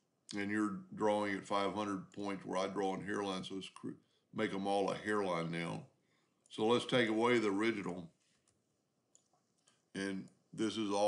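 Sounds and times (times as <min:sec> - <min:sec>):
computer mouse clicks: 0:08.4 - 0:09.8.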